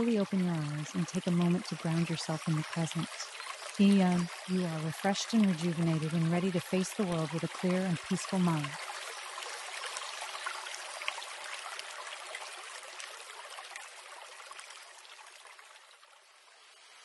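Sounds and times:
babbling stream: 0:00.0 - 0:17.0.

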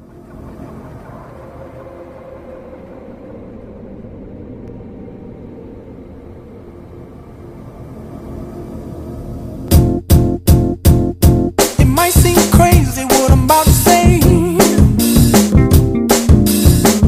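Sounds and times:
low rumbling hum: 0:00.0 - 0:16.1.

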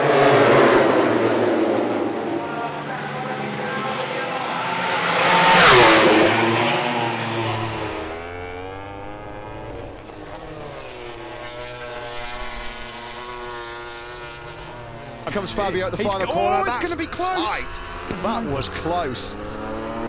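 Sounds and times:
motorcycle passing at speed: 0:00.0 - 0:20.0
motorcycles through corners: 0:00.0 - 0:20.0.

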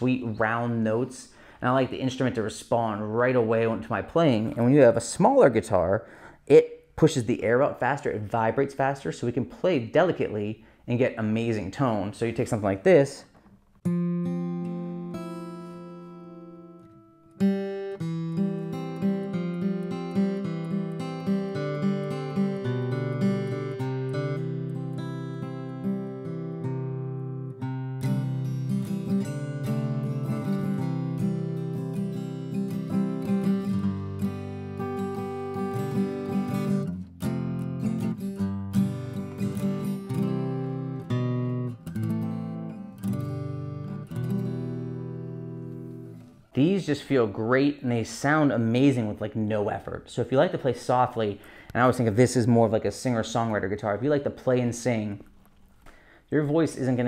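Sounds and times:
acoustic guitar chords: 0:13.3 - 0:48.5.

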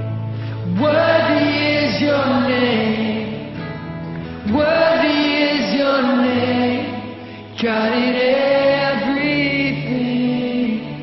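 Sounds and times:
man singing lead: 0:00.6 - 0:03.6, 0:04.4 - 0:11.0.

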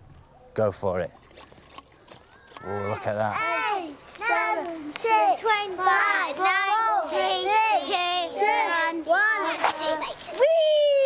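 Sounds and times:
children chanting in unison: 0:03.7 - 0:10.0.

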